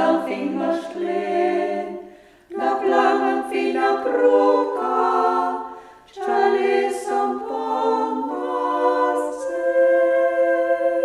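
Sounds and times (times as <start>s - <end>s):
women singing in harmony: 0.0s - 11.0s.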